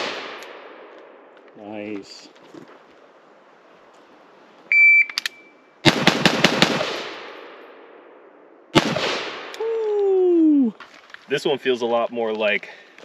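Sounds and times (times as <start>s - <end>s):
rifle gunshots: 0.0s - 0.9s, 5.8s - 7.9s, 8.7s - 9.5s.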